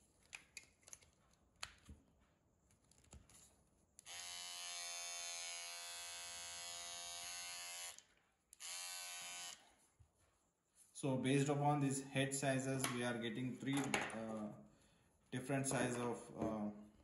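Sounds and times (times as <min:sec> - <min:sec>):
electric trimmer humming: 0:04.0 - 0:09.7.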